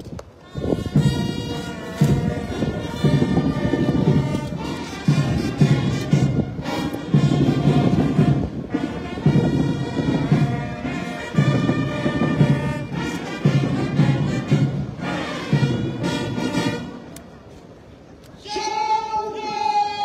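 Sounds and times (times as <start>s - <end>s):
brass band playing: 0.5s - 17.2s.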